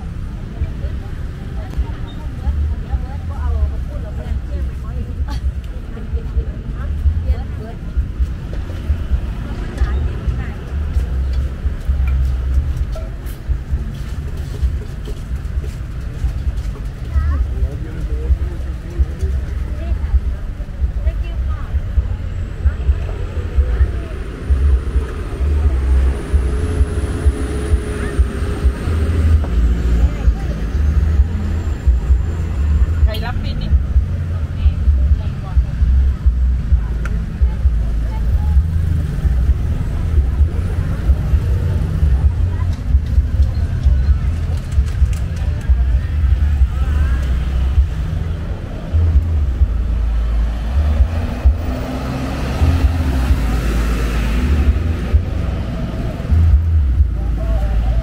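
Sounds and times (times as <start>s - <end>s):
cars passing: 0.0s - 58.0s
chatter of people: 0.0s - 58.0s
low rumble: 0.0s - 58.0s
motorbikes passing: 0.0s - 58.0s.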